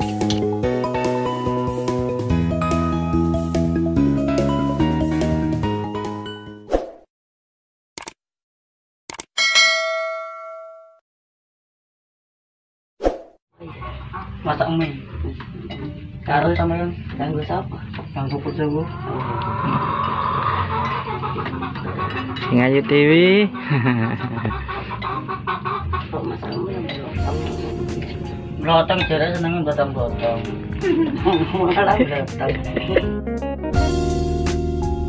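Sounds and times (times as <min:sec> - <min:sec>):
notification bell chime: 0:09.4 - 0:11.0
chickens clucking: 0:13.6 - 0:17.0, 0:17.7 - 0:28.2.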